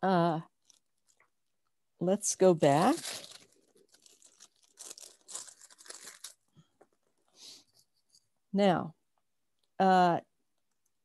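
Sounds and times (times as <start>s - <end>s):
paper rustling and crinkling: 2.6s - 7.2s.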